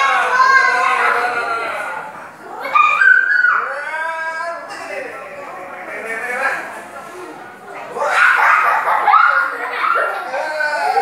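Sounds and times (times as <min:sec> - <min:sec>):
children squealing and calling out: 0:00.0 - 0:04.5, 0:07.9 - 0:11.0.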